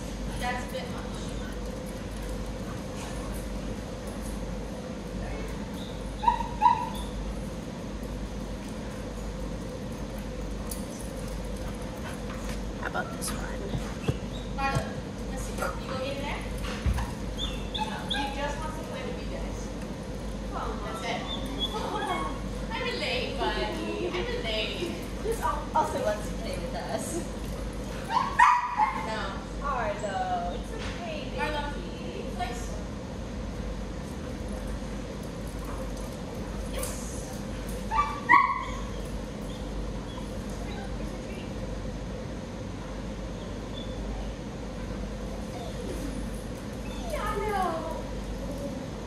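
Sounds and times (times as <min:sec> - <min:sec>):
young dog whining: 0:06.2 - 0:07.2, 0:17.4 - 0:18.4, 0:45.3 - 0:46.2, 0:46.8 - 0:47.4
dog barking: 0:28.1 - 0:29.1.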